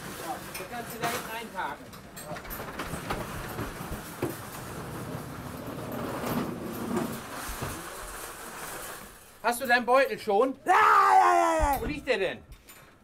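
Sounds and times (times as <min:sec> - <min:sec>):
metal cage rattling and rolling: 0:00.2 - 0:09.8.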